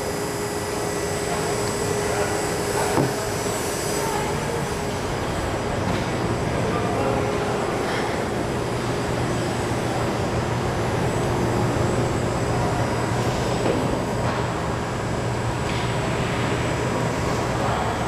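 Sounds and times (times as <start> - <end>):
machine running with low hum: 0.0 - 18.0.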